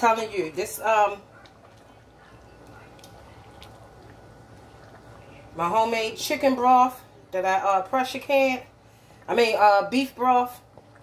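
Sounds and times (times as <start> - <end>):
gravy simmering in a pan: 0.0 - 11.0.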